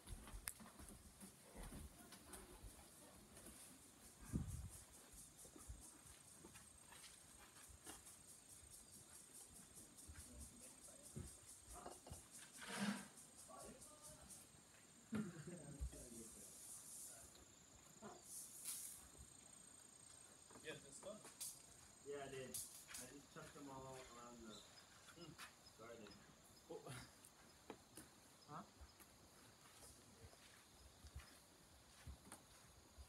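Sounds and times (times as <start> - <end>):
faint insects chirping: 0.0 - 33.0.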